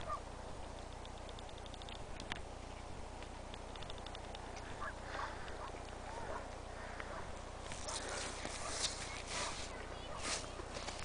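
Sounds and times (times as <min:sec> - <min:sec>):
faint distant calls: 0:00.0 - 0:11.0
footsteps crunching in snow: 0:07.6 - 0:11.0.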